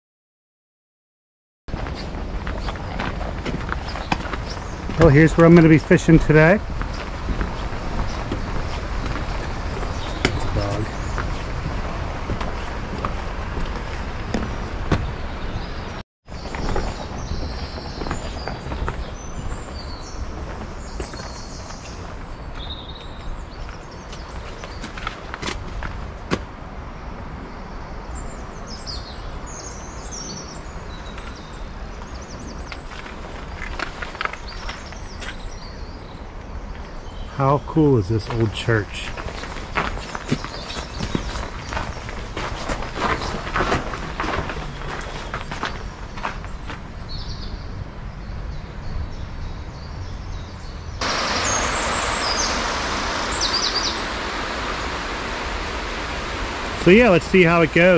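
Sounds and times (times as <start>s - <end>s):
birds chirping: 1.8s - 26.3s, 28.2s - 57.9s.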